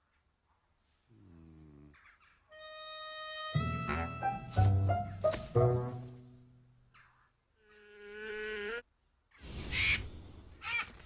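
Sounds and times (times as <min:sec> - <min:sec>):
fly buzzing: 0:07.6 - 0:08.8.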